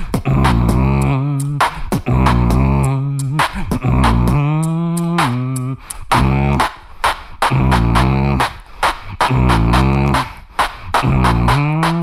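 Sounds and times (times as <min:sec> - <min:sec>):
beatboxing into microphone: 0:00.0 - 0:12.0.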